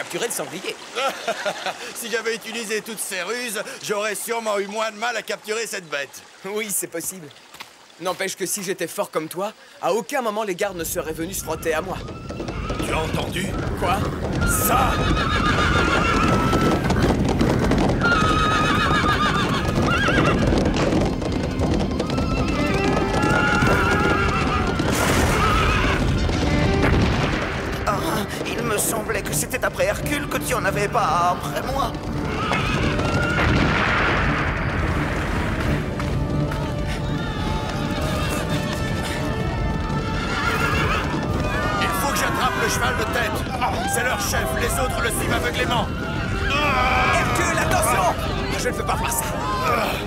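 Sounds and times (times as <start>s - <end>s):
hooves clattering: 10.6s - 50.0s
galloping hoofbeats: 10.7s - 50.0s
cartoon horses neighing: 11.8s - 21.2s, 21.8s - 26.3s, 31.2s - 33.6s, 36.6s - 50.0s
dramatic background music: 22.6s - 50.0s.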